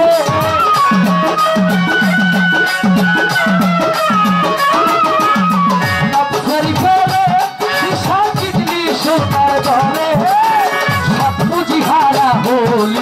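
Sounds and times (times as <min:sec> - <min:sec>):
fast ticking percussion: 0:00.0 - 0:13.0
steady drum beat: 0:00.0 - 0:13.0
violin sliding melody: 0:00.0 - 0:13.0.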